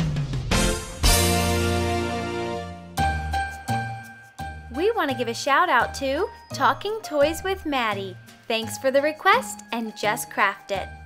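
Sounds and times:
bell-like tinkling music: 0:03.0 - 0:11.0
woman speaking: 0:04.7 - 0:11.0.

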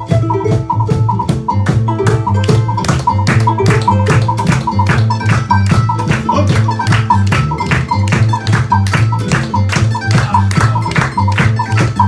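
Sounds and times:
acoustic guitar strumming: 0:00.0 - 0:12.0
charango strumming: 0:00.0 - 0:12.0
double bass: 0:00.0 - 0:12.0
sharp percussion taps: 0:00.0 - 0:12.0.

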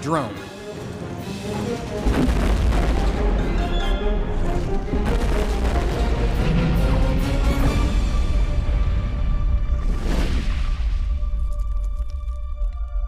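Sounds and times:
dramatic film music: 0:00.0 - 0:13.0
deep booming explosions: 0:01.9 - 0:11.5.

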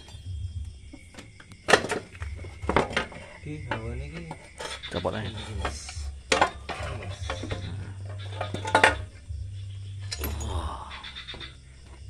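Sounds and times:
metallic clinks and knocks: 0:01.0 - 0:09.3, 0:09.9 - 0:10.7.

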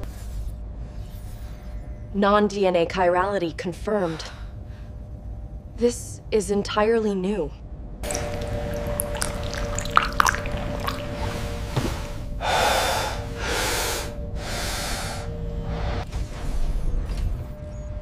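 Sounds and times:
ambient music drone: 0:08.0 - 0:18.0
person gasping: 0:12.4 - 0:15.3.

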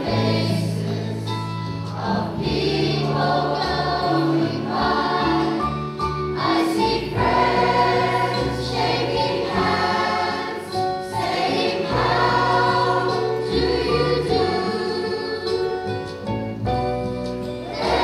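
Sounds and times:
choir singing in harmony: 0:00.0 - 0:16.3, 0:17.5 - 0:18.0
sustained bass accompaniment: 0:00.0 - 0:18.0.

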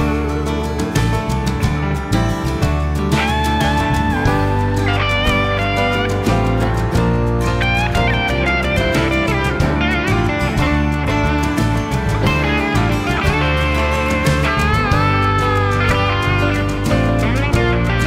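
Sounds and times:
bass guitar: 0:00.0 - 0:18.0
drums: 0:00.0 - 0:18.0
lead electric guitar: 0:00.0 - 0:18.0.

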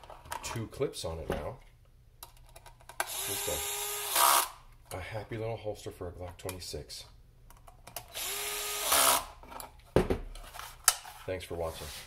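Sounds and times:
cordless screwdriver whine: 0:08.1 - 0:09.2.

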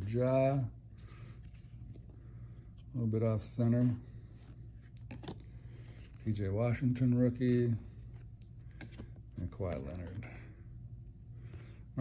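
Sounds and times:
low steady hum: 0:00.0 - 0:12.0
cards rustling and clicking: 0:03.7 - 0:10.3.

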